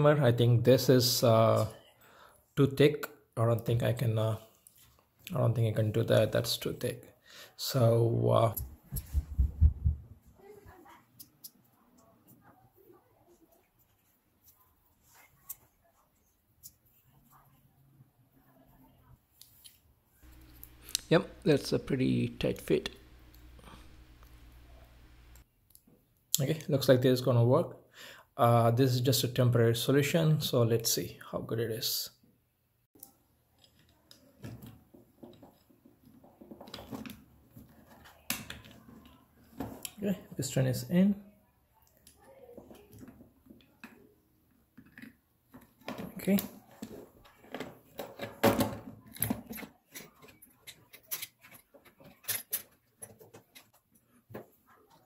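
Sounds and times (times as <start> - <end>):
low thumps of handled parts: 8.6 - 10.2
small parts clicking and rubbing: 33.0 - 40.0, 49.1 - 55.0.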